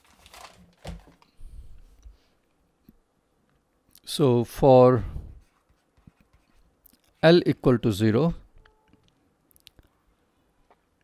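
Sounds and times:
person speaking: 0:03.9 - 0:05.6, 0:06.3 - 0:08.5.

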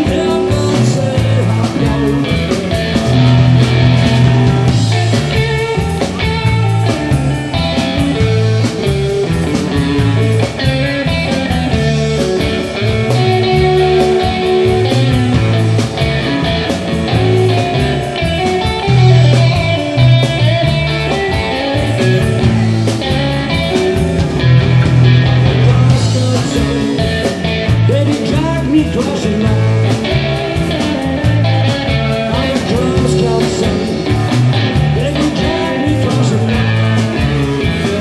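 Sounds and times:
drum kit: 0:00.0 - 0:38.0
electric bass: 0:00.0 - 0:38.0
electric guitar: 0:00.0 - 0:38.0.

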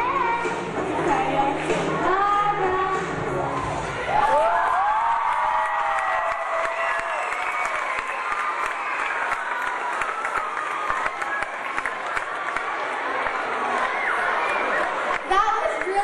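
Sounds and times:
high-pitched shouts and whoops: 0:04.1 - 0:11.0
children applauding: 0:04.2 - 0:16.0.

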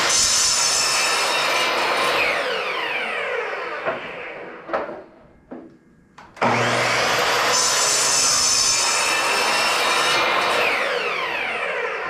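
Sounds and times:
miter saw cutting plywood: 0:00.0 - 0:05.1, 0:06.2 - 0:12.0.

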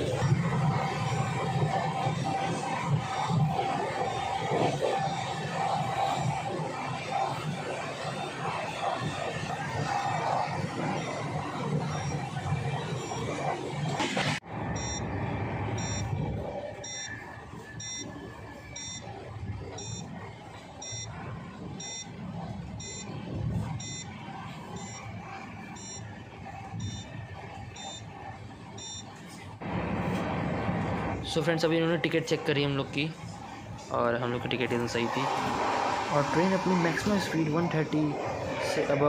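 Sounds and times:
short high electronic beep: 0:14.8 - 0:15.0.

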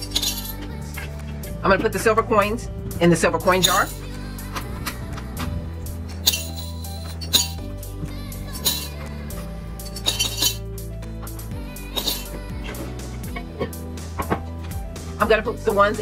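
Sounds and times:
coins clinking into glass jar: 0:00.0 - 0:00.5, 0:06.2 - 0:07.6, 0:09.8 - 0:10.6
background music: 0:00.0 - 0:16.0.

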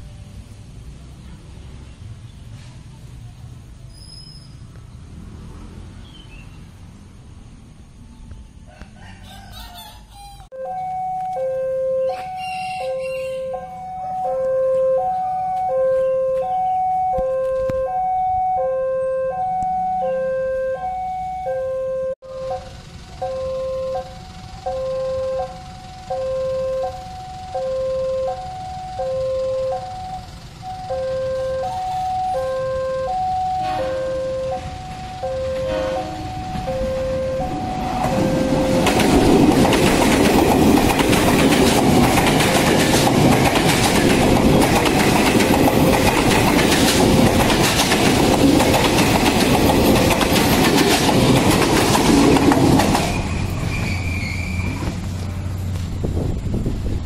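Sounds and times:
electric train passing on rails: 0:00.0 - 0:09.5, 0:10.1 - 0:57.0
level-crossing warning bell: 0:10.6 - 0:39.6.

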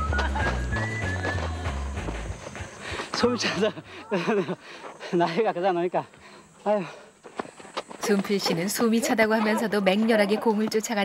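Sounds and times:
man laughing: 0:03.2 - 0:05.9.

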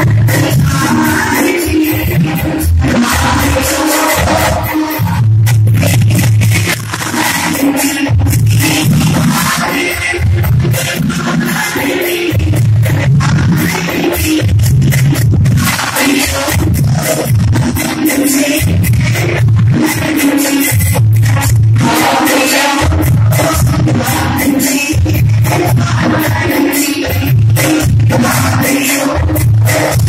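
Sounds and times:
percussion beat: 0:00.0 - 0:30.0.

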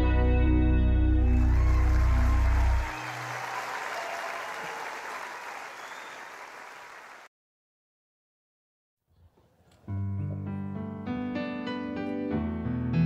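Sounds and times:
audience applause: 0:01.2 - 0:07.3.

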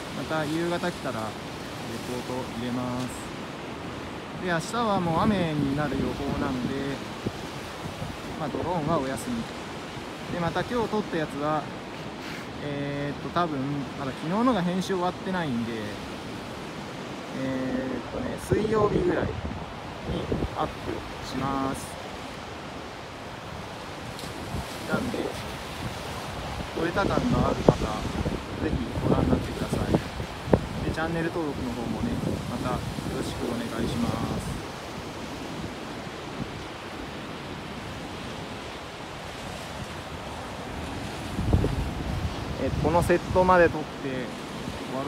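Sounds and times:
ocean surf breaking: 0:00.0 - 0:45.0
wind on microphone: 0:05.0 - 0:10.4, 0:16.1 - 0:45.0.

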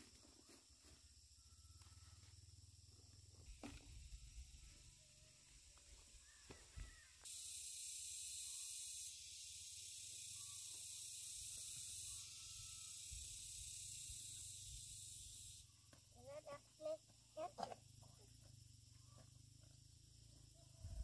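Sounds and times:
high-pitched hiss: 0:03.5 - 0:17.0.

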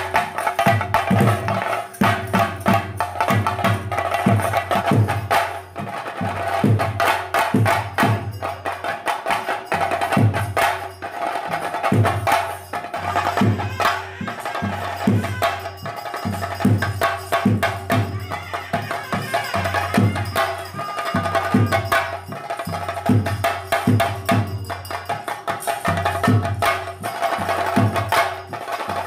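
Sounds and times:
drums beaten in fast rhythm: 0:00.0 - 0:29.0.

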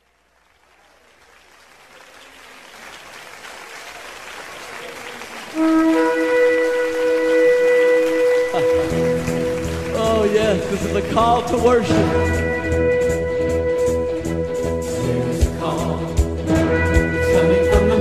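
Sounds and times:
crowd applause: 0:00.0 - 0:14.0.

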